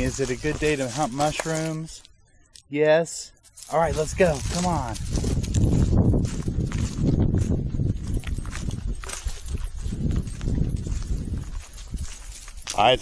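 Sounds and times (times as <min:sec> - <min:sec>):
footsteps crunching dry leaves: 0:00.0 - 0:02.1, 0:03.4 - 0:13.0.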